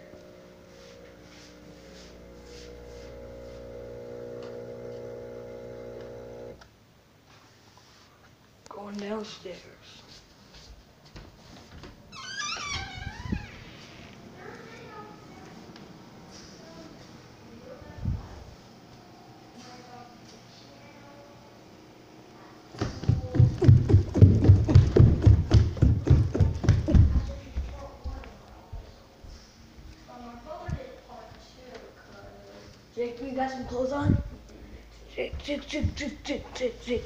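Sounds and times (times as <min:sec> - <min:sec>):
footsteps running down stairs: 0:22.7 - 0:28.9
soft low thuds: 0:22.8 - 0:28.1.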